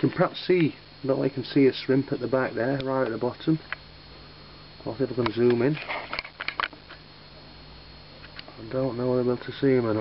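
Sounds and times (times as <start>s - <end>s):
faint steady background hum: 0.0s - 10.0s.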